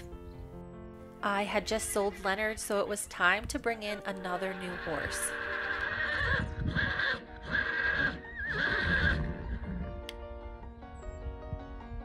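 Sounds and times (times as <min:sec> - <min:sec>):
background music: 0:00.0 - 0:12.0
horse whinnying: 0:04.6 - 0:10.1.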